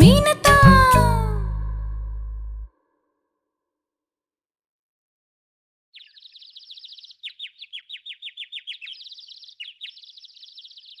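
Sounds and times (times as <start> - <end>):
birds chirping and trilling: 6.0 - 11.0.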